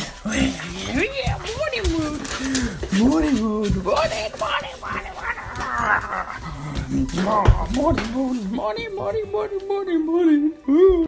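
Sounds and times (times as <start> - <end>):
dog whining and grumbling: 4.8 - 7.9.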